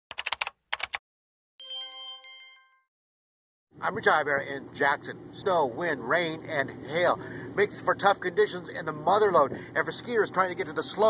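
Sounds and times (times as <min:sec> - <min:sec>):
rapid key-like clicks: 0:00.1 - 0:01.0
bell-like chime: 0:01.6 - 0:02.9.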